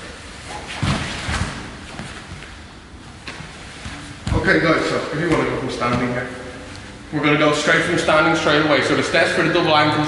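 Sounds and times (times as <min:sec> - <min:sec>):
bodies thumping on mats: 0:00.7 - 0:02.4.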